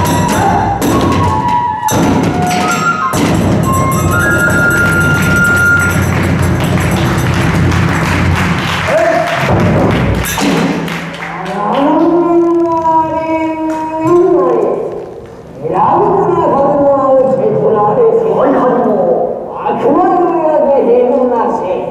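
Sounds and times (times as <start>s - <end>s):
hand cymbals: 0.0s - 1.2s, 1.8s - 8.4s
bamboo flute notes: 0.0s - 6.6s
taiko drum fast beat: 0.0s - 11.4s.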